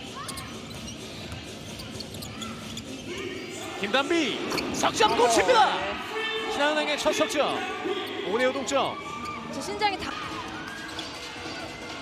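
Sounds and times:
sneaker squeaks: 0:00.0 - 0:03.4, 0:04.4 - 0:05.6, 0:09.0 - 0:11.3.

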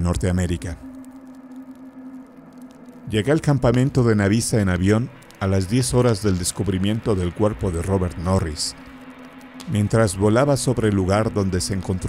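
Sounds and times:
ambient music low drone note: 0:00.0 - 0:12.0.

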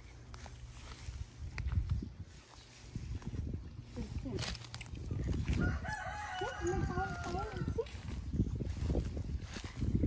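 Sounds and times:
steps rustling through grass: 0:00.0 - 0:10.0
rooster crowing: 0:05.4 - 0:07.8.

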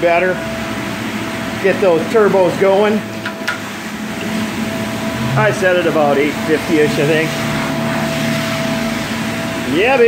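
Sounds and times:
carpet cleaning tool rushing hum: 0:00.0 - 0:10.0.

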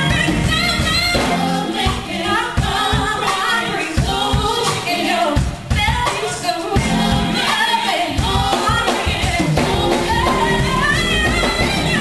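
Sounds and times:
band with drums: 0:00.0 - 0:12.0
woman singing into microphone: 0:00.0 - 0:12.0.

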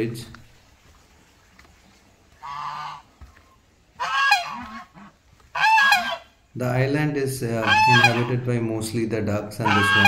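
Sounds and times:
waterfowl calling: 0:02.3 - 0:06.5, 0:07.6 - 0:08.4, 0:09.6 - 0:10.0.

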